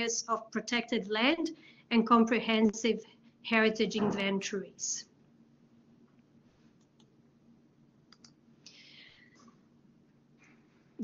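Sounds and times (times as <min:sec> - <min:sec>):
faint clicks: 0:08.1 - 0:08.8.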